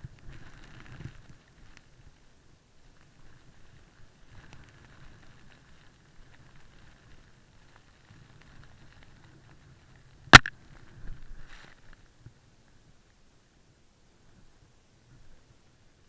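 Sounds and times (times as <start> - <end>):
muffled snowboard rumble in powder: 0.0 - 13.0.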